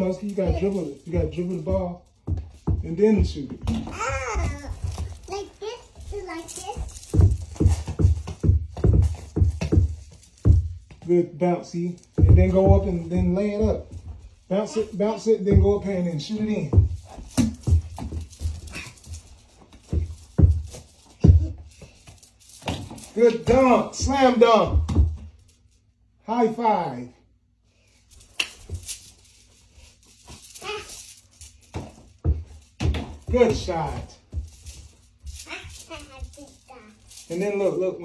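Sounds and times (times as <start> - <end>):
toy ball dribbled on carpet: 6.8 - 11.1.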